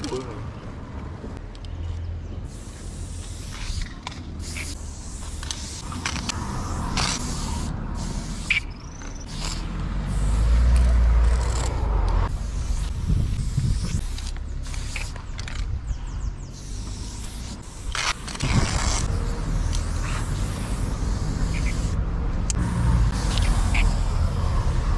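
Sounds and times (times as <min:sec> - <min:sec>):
spray paint can hissing: 0:02.5 - 0:15.7, 0:16.4 - 0:24.9.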